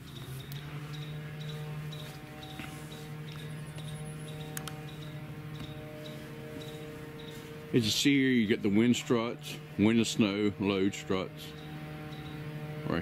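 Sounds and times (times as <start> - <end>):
faint high ticking: 0.0 - 7.4, 11.5 - 12.5
high chirping: 0.0 - 8.0, 11.3 - 12.6
steady hum of held tones: 0.0 - 13.0.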